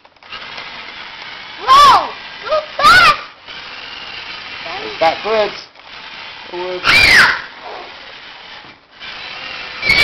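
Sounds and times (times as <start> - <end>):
toy bulldozer motor whir: 0.0 - 10.0
high-pitched vocal squeals: 6.7 - 8.1, 9.8 - 10.0.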